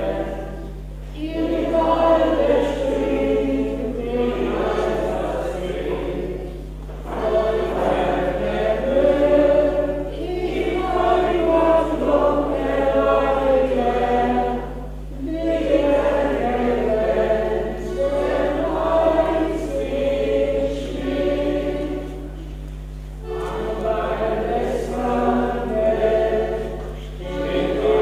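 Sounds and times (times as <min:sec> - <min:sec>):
low electrical hum: 0:00.0 - 0:28.0
button accordion: 0:23.2 - 0:28.0.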